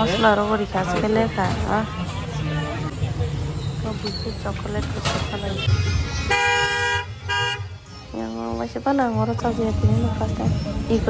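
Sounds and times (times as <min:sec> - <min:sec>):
vehicle horn blare: 0:05.2 - 0:07.8.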